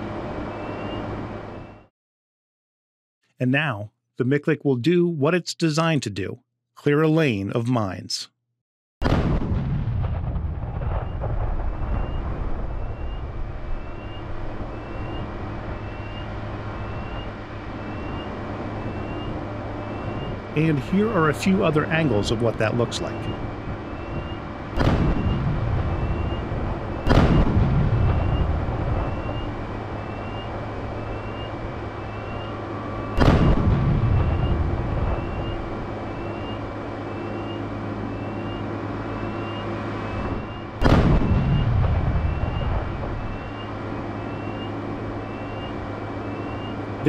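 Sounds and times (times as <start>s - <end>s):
low engine hum: 0.0s - 1.9s, 10.0s - 47.0s
explosion booms: 9.0s - 14.1s, 24.7s - 30.1s, 33.1s - 35.6s, 40.2s - 43.5s.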